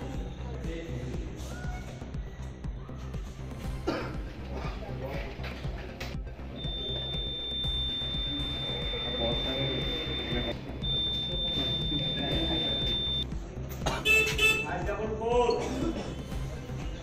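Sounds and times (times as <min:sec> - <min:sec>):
long high-pitched beep: 0:06.6 - 0:13.3.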